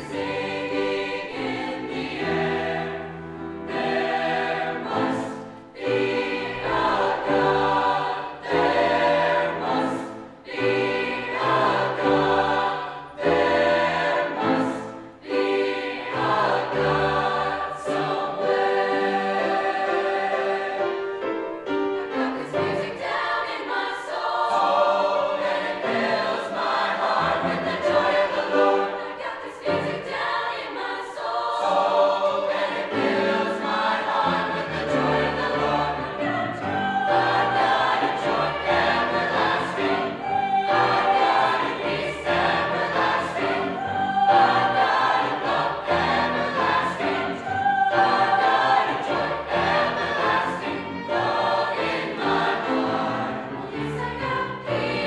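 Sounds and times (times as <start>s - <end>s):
mixed choir singing in parts: 0.0s - 55.0s.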